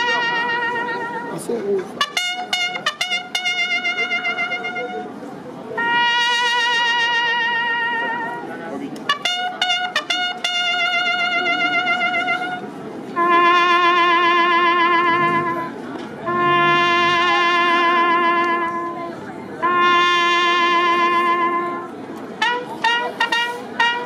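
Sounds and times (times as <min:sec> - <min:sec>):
solo trumpet bugle call: 0:00.0 - 0:01.4, 0:02.0 - 0:05.2, 0:05.8 - 0:24.0.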